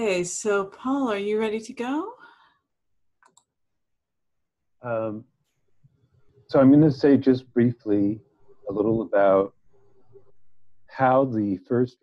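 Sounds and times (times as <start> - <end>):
person asking a question: 8.7 - 9.5.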